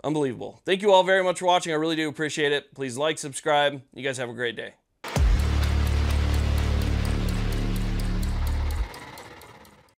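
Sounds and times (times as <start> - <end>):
faint regular ticks: 5.2 - 10.0.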